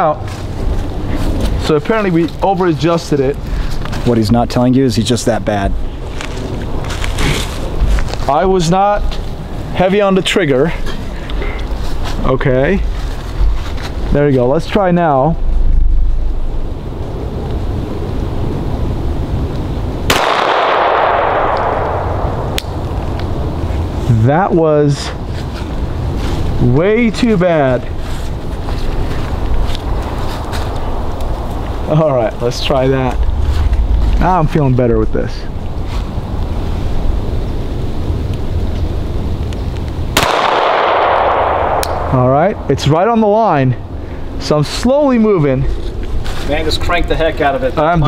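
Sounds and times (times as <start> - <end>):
faint sharp crack: 20.1 - 22.8
pistol shot echoing: 20.1 - 22.8, 40.2 - 42.2
wind rumble on microphone: 25.1 - 43.0.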